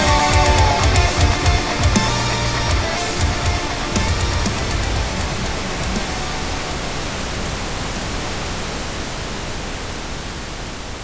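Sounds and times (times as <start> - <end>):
static-like noise hiss: 0.0 - 11.0.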